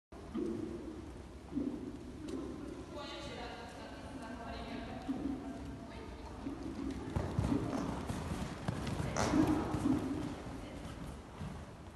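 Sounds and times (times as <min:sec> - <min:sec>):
horse hoofbeats on sand: 0:06.7 - 0:11.8.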